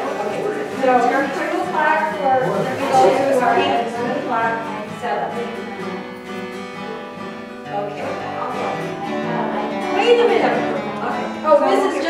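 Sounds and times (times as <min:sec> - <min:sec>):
people talking: 0:00.0 - 0:06.0, 0:07.7 - 0:12.0
acoustic guitar chords: 0:00.0 - 0:12.0.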